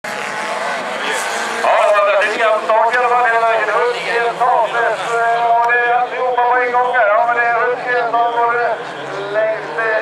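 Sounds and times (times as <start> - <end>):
racing car engines at full throttle: 0.0 - 10.0.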